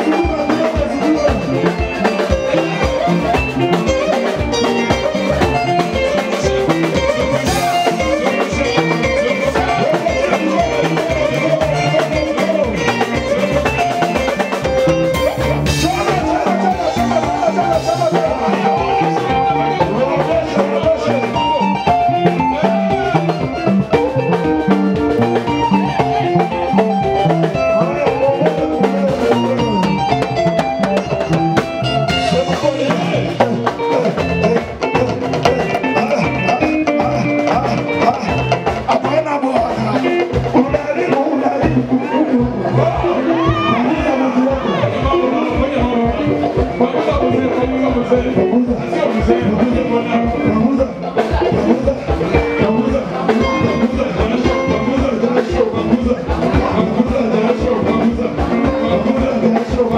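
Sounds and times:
drum kit beat: 0.0 - 59.9
keyboard: 0.0 - 59.9
people singing into microphones: 4.2 - 31.4, 32.1 - 59.9.

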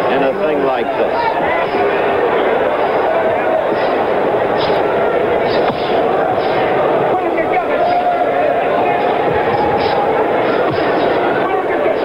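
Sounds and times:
crowd of voices din: 0.0 - 12.0
sharp knock: 5.5 - 6.6.

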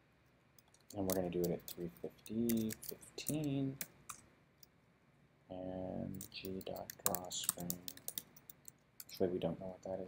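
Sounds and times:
keyboard keys clicking: 0.6 - 4.2, 6.1 - 9.2
man talking: 0.9 - 3.9, 5.5 - 8.1, 9.1 - 10.0.

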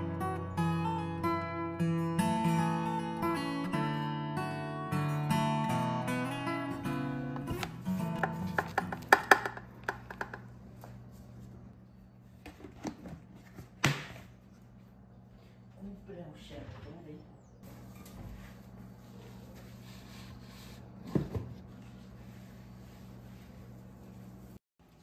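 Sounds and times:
acoustic guitar music: 0.0 - 9.8.

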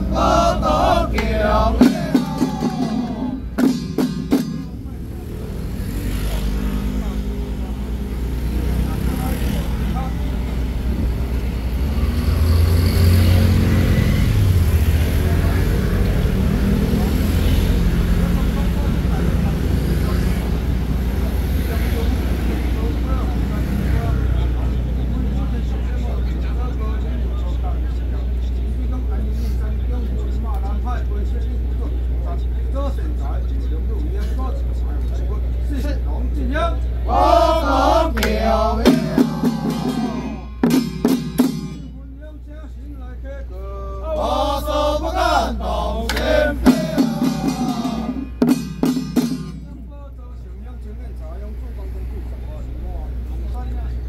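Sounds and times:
men chanting: 0.0 - 4.3, 37.0 - 40.7, 43.5 - 48.7.

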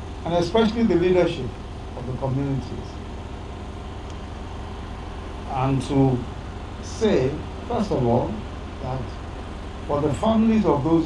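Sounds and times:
low background hum and rumble: 0.0 - 11.0.

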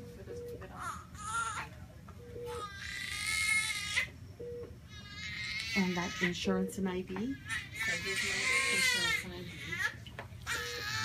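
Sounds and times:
baby crying: 0.8 - 1.7, 2.5 - 4.1, 4.9 - 6.5, 7.4 - 11.0.

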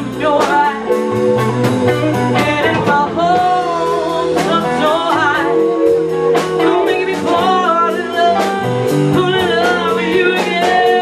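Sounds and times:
blues band playing: 0.0 - 11.0
woman singing long notes: 0.0 - 11.0.

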